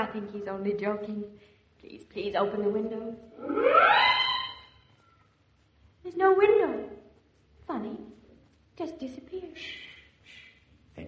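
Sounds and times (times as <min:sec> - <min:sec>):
rising electronic pitch glide: 0:03.4 - 0:04.6.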